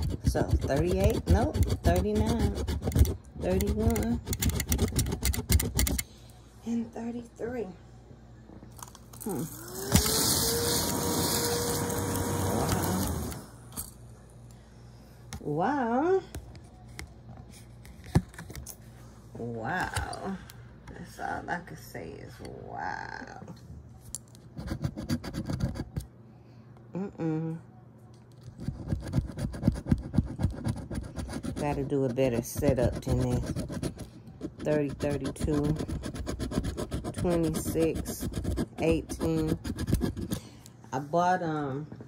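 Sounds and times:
coin scratching lottery ticket: 0:00.0 - 0:06.0, 0:24.6 - 0:26.0, 0:28.6 - 0:40.4
motor whine: 0:09.3 - 0:13.7.

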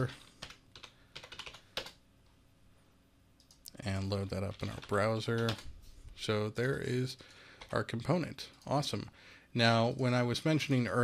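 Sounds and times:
computer keyboard typing: 0:00.2 - 0:02.0, 0:03.4 - 0:05.7, 0:07.6 - 0:08.8.

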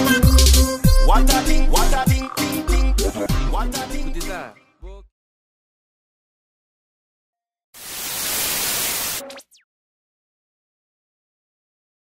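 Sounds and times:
television static hiss: 0:07.8 - 0:09.3.

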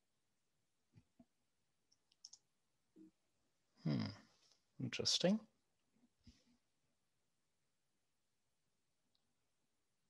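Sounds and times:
person humming hmm: 0:03.8 - 0:04.3.

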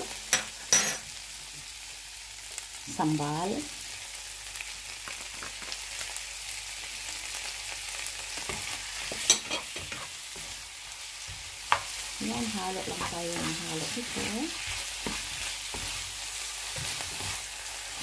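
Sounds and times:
shrimp sizzling in a frying pan: 0:00.0 - 0:18.0.

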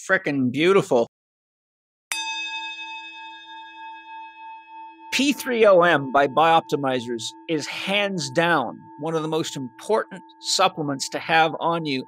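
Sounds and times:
struck bell ringing: 0:02.1 - 0:12.0.

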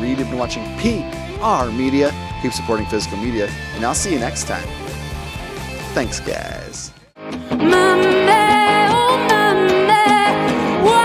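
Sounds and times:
electric and acoustic guitar: 0:00.0 - 0:11.0
woman singing: 0:07.4 - 0:11.0.

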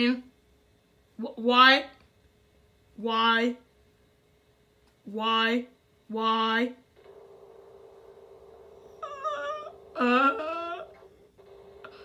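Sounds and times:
low hum: 0:06.8 - 0:12.0
high wavering vocal whine: 0:09.0 - 0:11.2.

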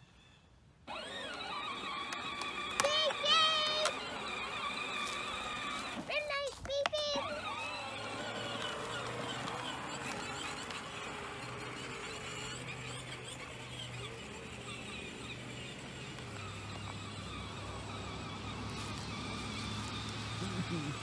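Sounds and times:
toy tractor motor humming: 0:00.0 - 0:21.0
child calling out: 0:02.8 - 0:04.0.

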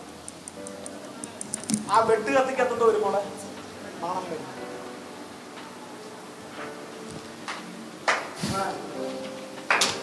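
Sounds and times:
soft background music: 0:00.0 - 0:10.0
man speaking amplified: 0:01.8 - 0:04.5.

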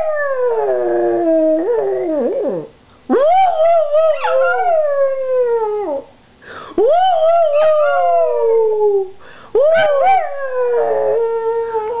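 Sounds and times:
dog howling: 0:00.0 - 0:06.1, 0:06.9 - 0:12.0.

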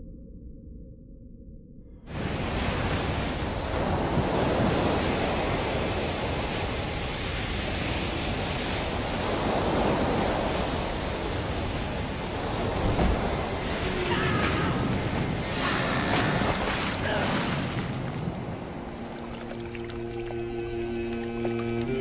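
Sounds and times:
sea surf breaking: 0:02.1 - 0:19.4.

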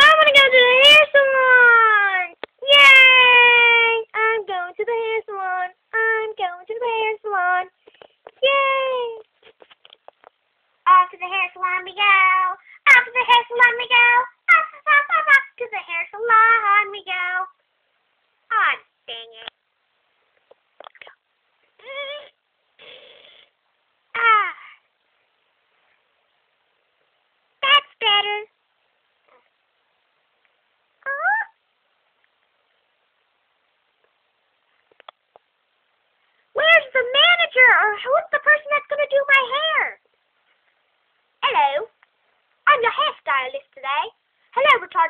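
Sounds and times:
high-pitched voice saying huh: 0:31.0 - 0:31.6
faint clicks: 0:34.8 - 0:35.5.

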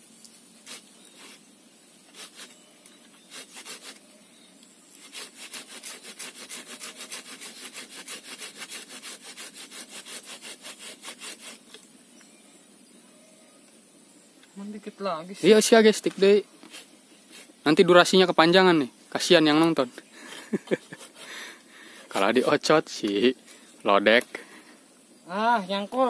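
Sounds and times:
hand saw cutting branch: 0:02.1 - 0:04.1, 0:04.9 - 0:11.9, 0:20.6 - 0:23.3.

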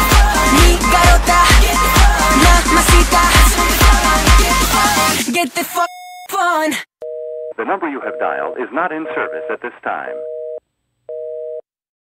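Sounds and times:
telephone busy signal beeps: 0:05.8 - 0:06.3.

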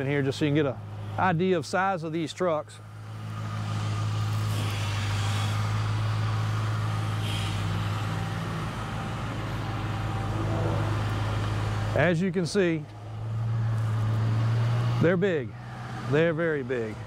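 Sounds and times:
truck engine idling: 0:00.0 - 0:17.0.

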